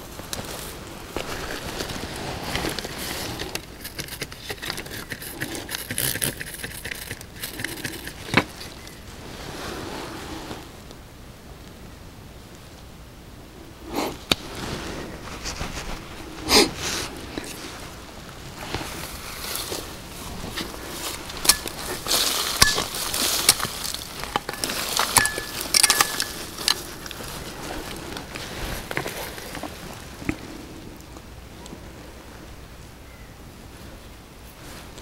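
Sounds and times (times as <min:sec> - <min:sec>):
rustling and scraping: 0:00.0 - 0:10.8, 0:13.8 - 0:32.2
stones clicking and knocking: 0:01.1 - 0:09.1, 0:20.4 - 0:30.4.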